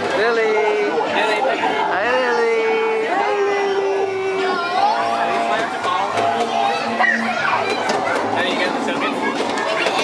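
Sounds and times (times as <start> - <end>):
overlapping voices and chatter: 0.0 - 10.0.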